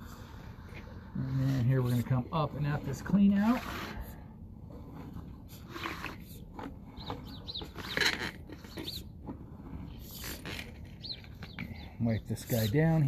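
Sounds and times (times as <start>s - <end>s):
small birds chirping: 5.6s - 13.0s.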